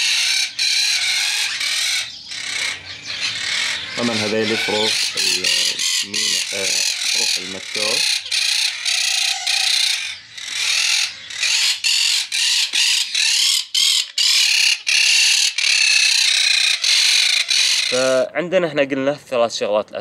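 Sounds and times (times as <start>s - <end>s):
parakeets screeching: 0.0s - 18.3s.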